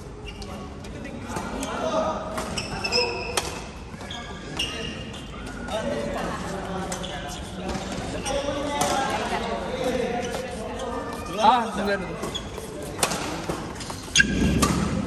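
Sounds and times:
murmur of voices: 0.0 - 15.0
sneaker squeaks on court floor: 0.2 - 0.7, 2.4 - 5.8, 6.9 - 9.0, 10.1 - 13.3, 14.0 - 15.0.

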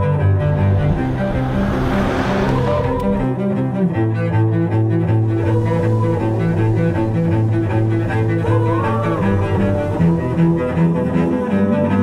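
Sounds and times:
car rushing past: 0.0 - 3.7, 5.1 - 10.8
music with low bowed strings: 0.0 - 12.0.

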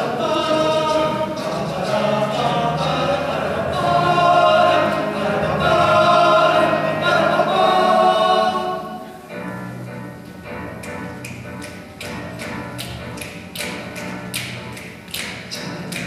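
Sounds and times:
male choir singing: 0.0 - 9.1.

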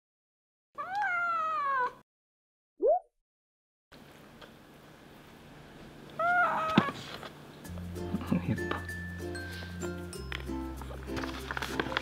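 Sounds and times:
cat meow: 0.8 - 2.0, 6.2 - 7.0.

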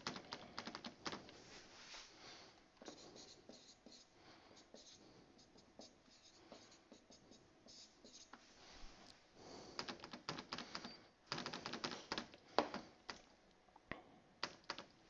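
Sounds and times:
marker writing on whiteboard: 2.8 - 8.4.

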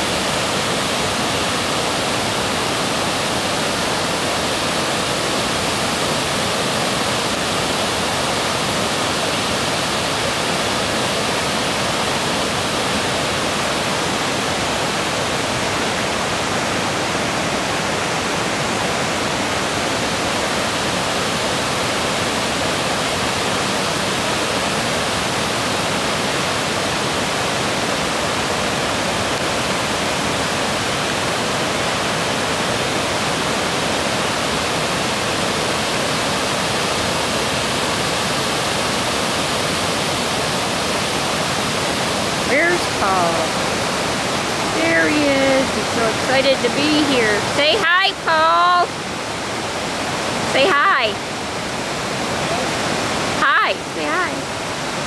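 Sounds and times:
waterfall roaring over rock ledges: 0.0 - 55.0.

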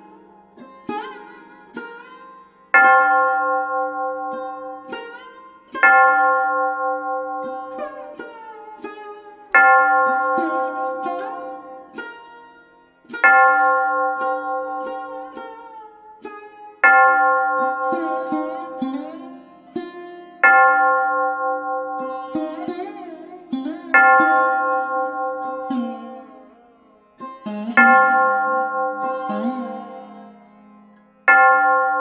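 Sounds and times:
plucked string instrument notes: 0.0 - 32.0.

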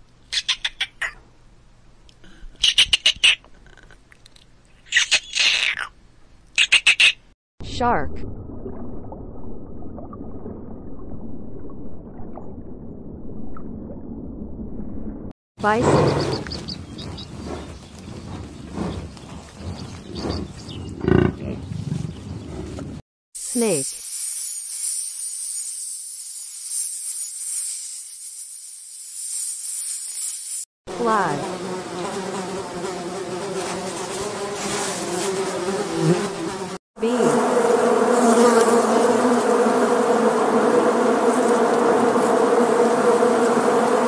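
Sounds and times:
squirrel chattering: 0.3 - 1.2, 2.6 - 3.8, 4.9 - 5.9, 6.6 - 7.3
bison grunting: 17.0 - 22.9.

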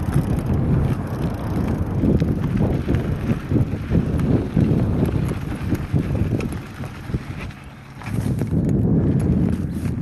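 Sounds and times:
bike clicks and rattles: 0.0 - 10.0
wind buffeting microphone: 0.0 - 10.0.

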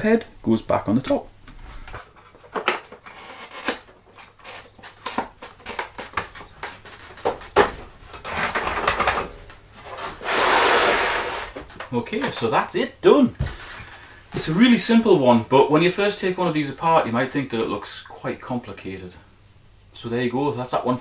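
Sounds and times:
plastic scraping: 2.0 - 12.4.

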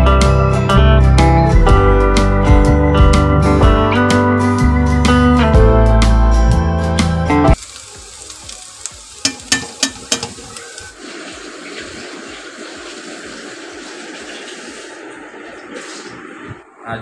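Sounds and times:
potatoes sizzling in oil: 7.6 - 15.1
metal spatula clanking on pan: 9.2 - 10.5.

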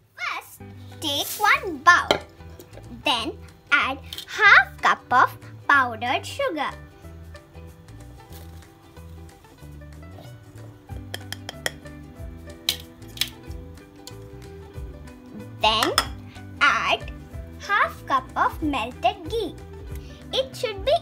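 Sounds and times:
background music: 0.0 - 21.0
bowls clinking: 2.1 - 2.9, 11.0 - 11.9, 15.7 - 16.3.

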